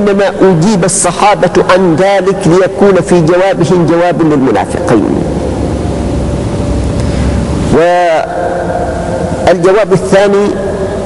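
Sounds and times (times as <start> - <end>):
low rumble with hiss: 0.0 - 11.0.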